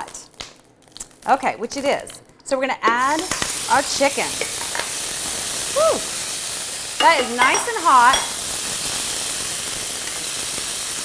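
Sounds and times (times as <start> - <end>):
chicken sizzling in oil: 3.0 - 11.0.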